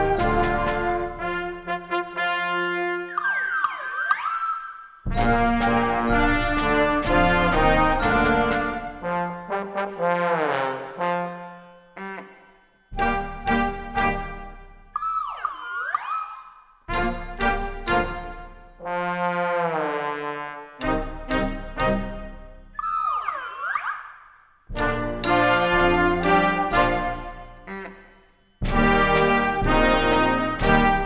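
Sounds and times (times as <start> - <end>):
trombones sliding glissando: 0.0 - 12.4
slide whistles gliding: 3.0 - 5.1, 15.0 - 16.8, 22.8 - 24.5.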